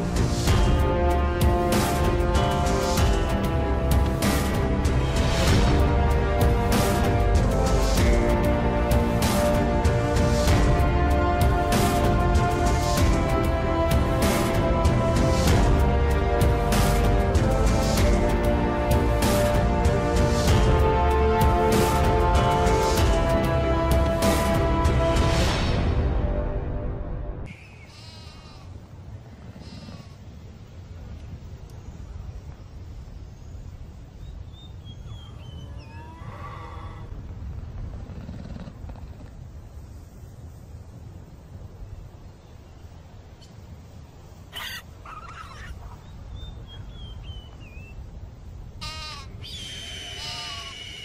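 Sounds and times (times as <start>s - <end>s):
music: 0.0s - 27.5s
animal calls: 27.5s - 28.8s, 44.5s - 47.2s, 48.8s - 51.0s
low steady background noise: 27.5s - 51.0s
high wavering whistle: 49.4s - 51.0s.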